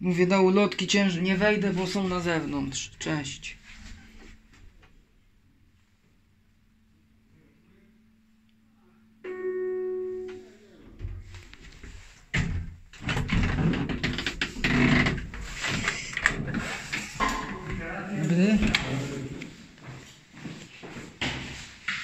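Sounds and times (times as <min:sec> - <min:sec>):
lift arrival chime: 0:09.2 - 0:10.8
hinged door rattling open: 0:12.4 - 0:15.2.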